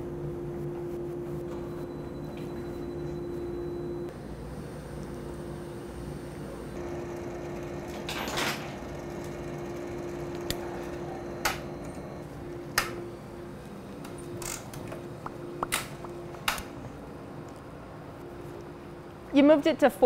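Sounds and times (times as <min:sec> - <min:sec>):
crane hoist humming: 0:00.0 - 0:19.1.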